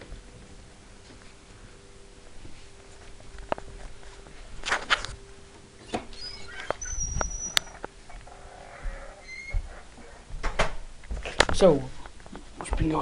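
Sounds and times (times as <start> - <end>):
high whine: 0.0 - 10.5
faint steady hum: 0.0 - 13.0.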